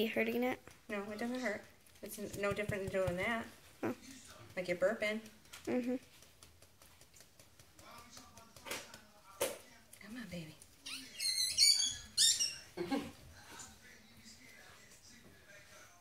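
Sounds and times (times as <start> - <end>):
puppy squeaky cries: 10.8 - 12.7.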